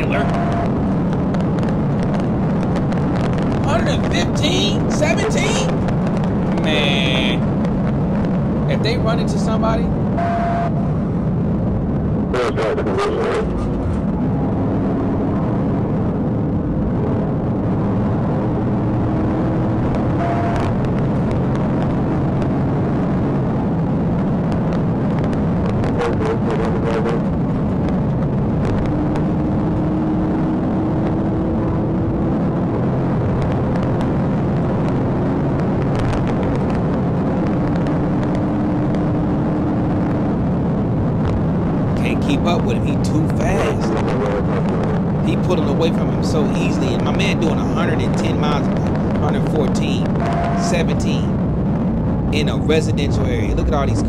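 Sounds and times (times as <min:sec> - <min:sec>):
car interior road rush: 0:00.0 - 0:54.0.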